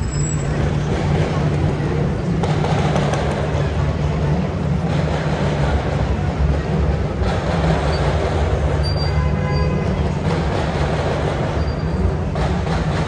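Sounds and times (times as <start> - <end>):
traffic engines rumbling: 0.0 - 13.0.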